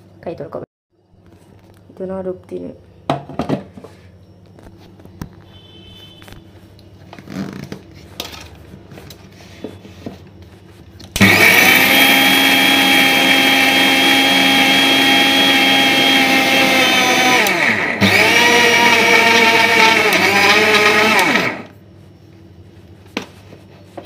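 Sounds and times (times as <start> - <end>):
mixer grinder motor grinding: 11.1 - 21.8.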